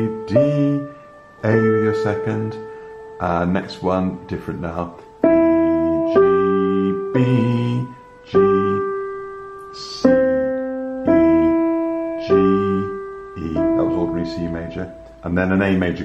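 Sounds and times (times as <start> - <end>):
digital piano broken chords: 0.0 - 16.0.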